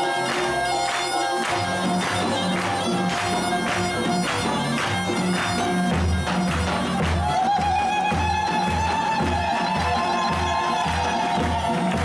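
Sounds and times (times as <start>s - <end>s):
drum beating: 0.0s - 12.0s.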